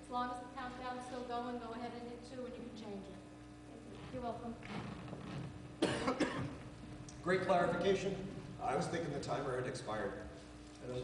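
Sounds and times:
man coughing into microphone: 5.8 - 6.7.

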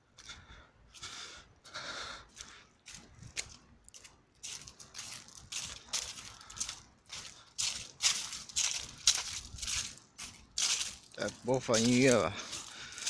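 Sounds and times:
footsteps crunching dry leaves: 2.3 - 13.0.

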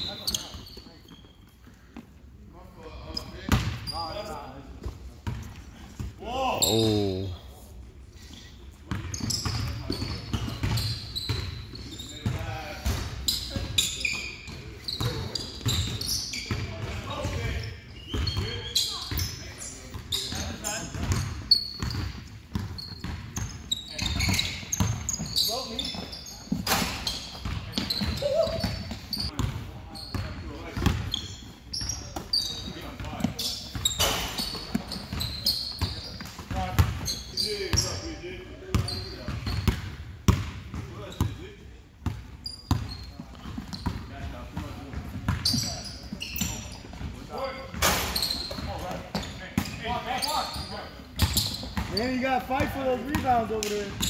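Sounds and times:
shoes squeaking on court: 0.0 - 7.5, 8.2 - 54.0.

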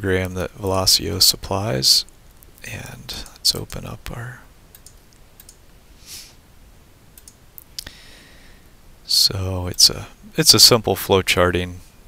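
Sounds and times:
soft hiss: 0.0 - 12.0
computer mouse clicking: 4.7 - 5.6, 7.2 - 7.4.

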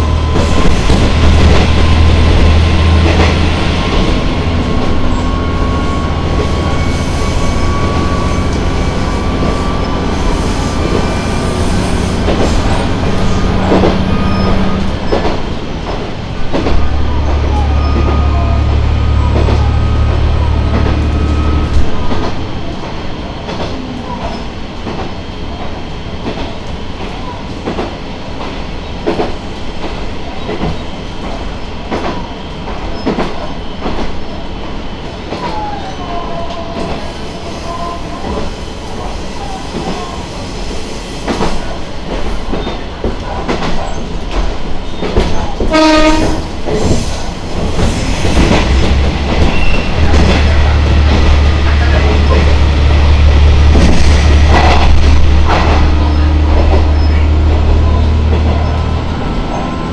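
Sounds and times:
diesel railcar running: 0.0 - 59.9
train horn blast: 45.6 - 46.6
wheel squeal: 49.4 - 50.0.

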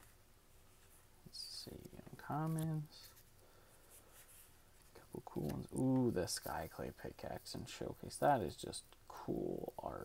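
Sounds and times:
rustling of trading cards: 0.0 - 8.2.

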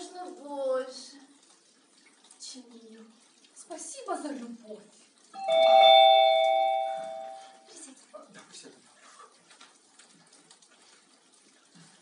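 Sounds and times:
two-tone doorbell chime: 5.4 - 7.6.

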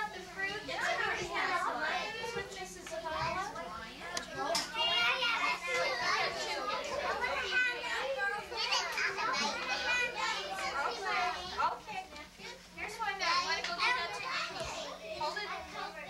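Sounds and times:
young children chattering: 0.0 - 16.0.

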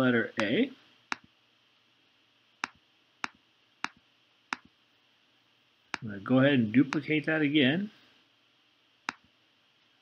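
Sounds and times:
computer mouse clicks: 2.6 - 4.7, 9.1 - 9.3.

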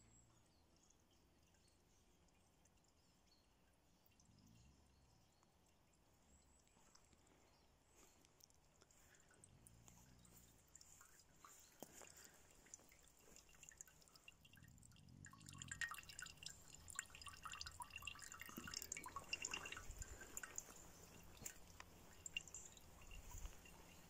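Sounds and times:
water dripping into metal pot: 9.2 - 24.0.

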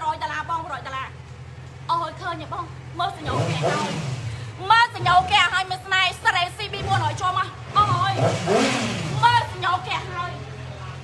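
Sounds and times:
motorcycle engine revving: 1.4 - 11.0.

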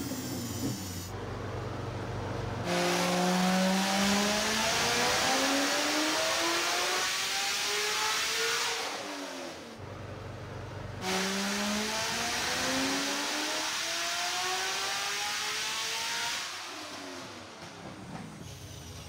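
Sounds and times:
car engine revving on dyno: 2.5 - 9.8, 10.9 - 17.7.

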